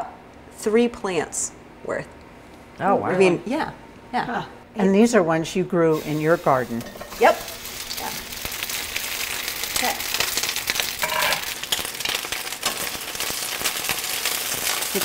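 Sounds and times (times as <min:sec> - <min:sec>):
peppers sizzling in oil: 0:05.9 - 0:15.0.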